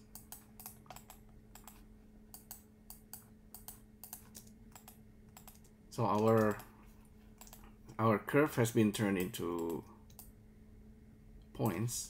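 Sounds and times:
faint low hum: 0.0 - 12.0
computer keyboard clicking: 0.1 - 6.7, 7.4 - 7.6.

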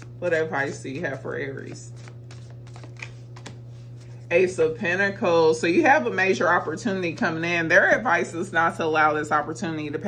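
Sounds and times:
cards clicking and sliding: 1.6 - 4.2.

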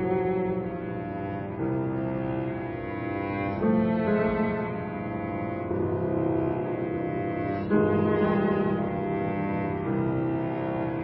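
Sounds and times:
cello bowed notes: 0.0 - 11.0.

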